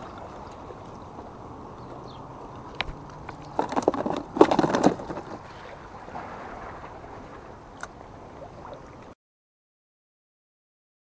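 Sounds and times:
fishing gear clicks and knocks: 2.5 - 5.4.

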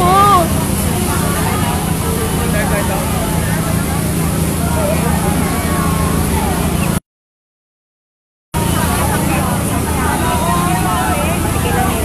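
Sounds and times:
vehicle engine idling: 0.0 - 7.0, 8.6 - 12.0.

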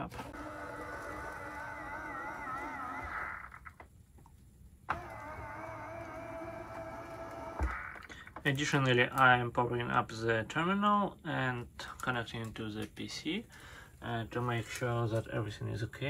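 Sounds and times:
motors whining: 0.0 - 3.8, 4.9 - 8.1.

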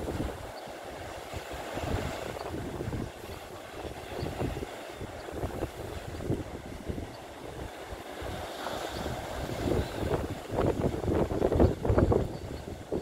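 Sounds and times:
surf breaking on rocks: 0.0 - 12.3
wind buffeting microphone: 0.0 - 13.0.

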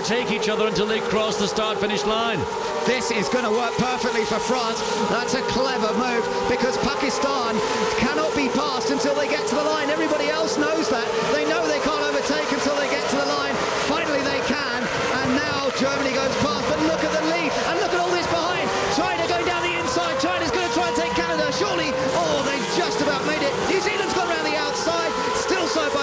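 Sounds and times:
race cars accelerating: 0.0 - 26.0.

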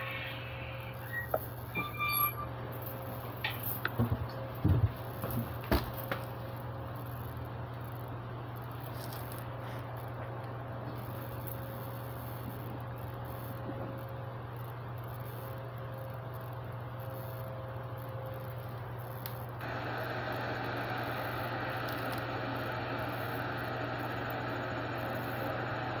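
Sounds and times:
constant low hum: 0.0 - 26.0
steady background noise: 0.0 - 26.0.

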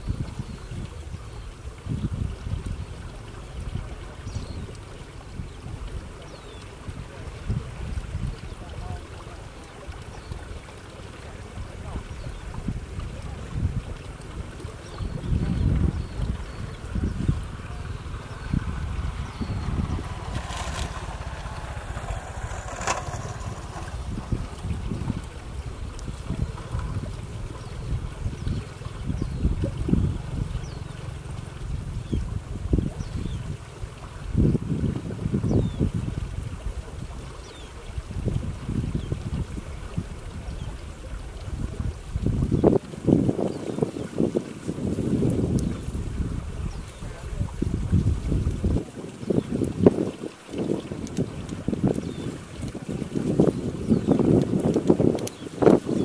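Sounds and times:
wind buffeting microphone: 0.0 - 10.7, 11.3 - 56.0.

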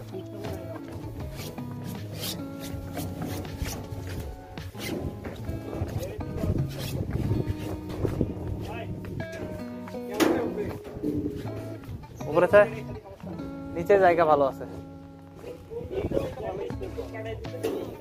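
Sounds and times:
background music with beat: 0.0 - 18.0.

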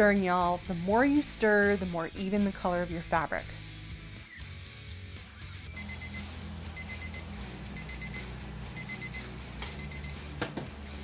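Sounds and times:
background music: 0.0 - 11.0
thermometer alarm beeping: 5.8 - 10.2.

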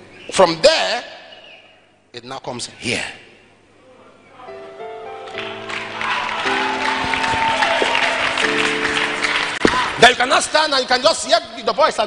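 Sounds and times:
keyboard chords: 4.4 - 10.5
congregation applauding: 5.2 - 10.6.

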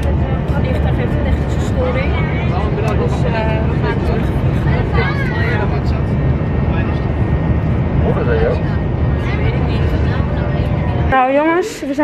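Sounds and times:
airliner cabin rumble: 0.0 - 12.0
faint voices: 0.0 - 12.0.

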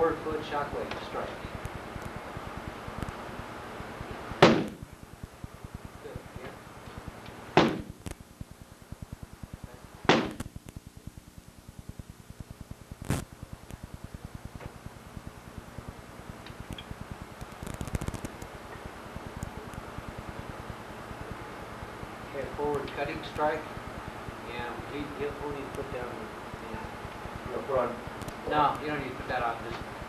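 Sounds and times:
strikes on a padded striking shield: 4.4 - 4.8, 7.6 - 7.9, 10.1 - 10.4.

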